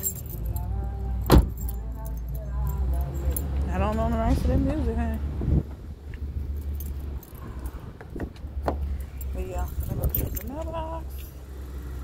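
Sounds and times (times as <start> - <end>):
keys jingling: 0.0 - 4.9, 6.4 - 7.9, 8.8 - 11.4.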